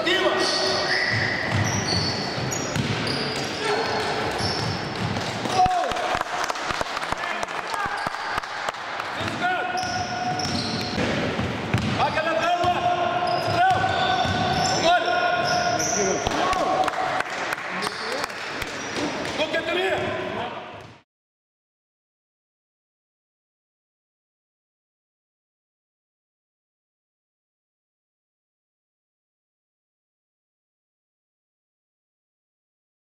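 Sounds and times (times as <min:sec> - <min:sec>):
sneakers squeaking: 0:00.0 - 0:05.7, 0:09.6 - 0:16.4, 0:17.8 - 0:20.2
players calling out: 0:00.0 - 0:06.2, 0:11.8 - 0:17.0
basketball bouncing on wooden floor: 0:01.4 - 0:05.6, 0:09.9 - 0:12.0.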